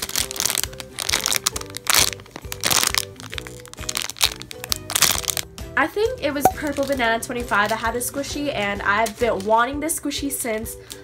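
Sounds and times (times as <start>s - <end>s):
plastic bag crinkling: 0.0s - 5.4s
background music: 0.0s - 11.0s.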